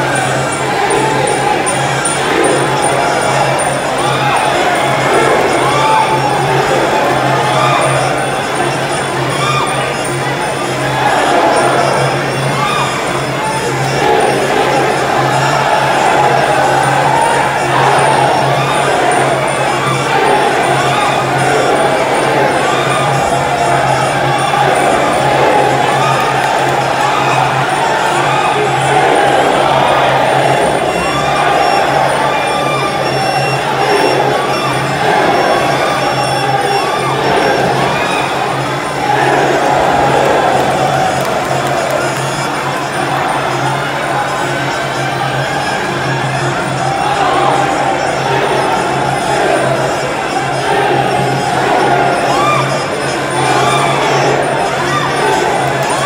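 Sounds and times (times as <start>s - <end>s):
crowd shouting and cheering: 0.0s - 56.0s.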